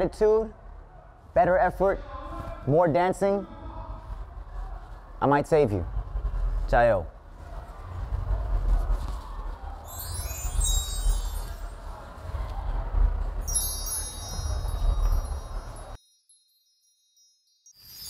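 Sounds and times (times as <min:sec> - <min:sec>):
low rumble: 0:03.6 - 0:16.0
shimmering chime effects: 0:09.9 - 0:11.8, 0:13.4 - 0:18.0.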